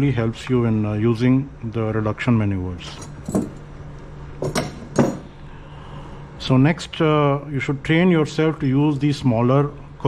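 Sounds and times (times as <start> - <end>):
metal clamps clinking: 2.8 - 3.7, 4.4 - 5.3.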